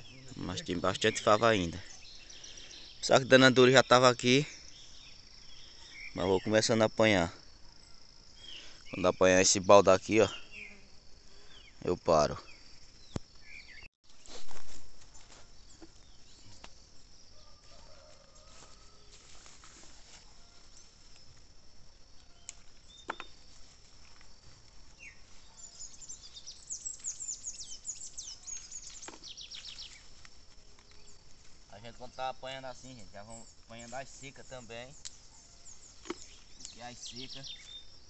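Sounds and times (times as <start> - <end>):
bird chirping: 0.0 - 14.3, 25.0 - 38.0.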